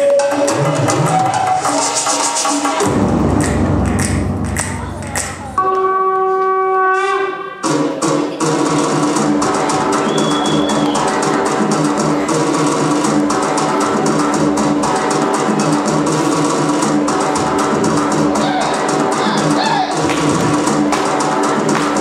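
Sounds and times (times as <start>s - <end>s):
fast dense drumming: 2.8s - 5.6s.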